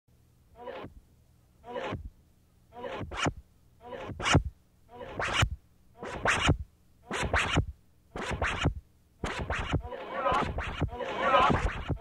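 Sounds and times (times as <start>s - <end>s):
stuttering electronic glitch music: 9.3s - 12.0s.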